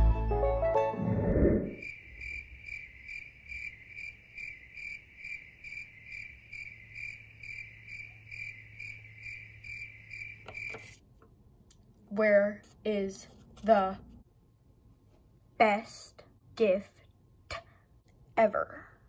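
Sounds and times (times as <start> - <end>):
music: 0.0 - 1.3
cricket chirping: 1.7 - 11.0.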